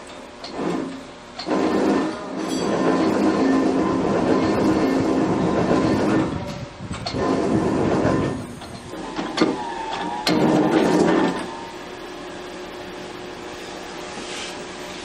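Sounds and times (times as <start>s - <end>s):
press brake machine humming: 0.0s - 15.0s.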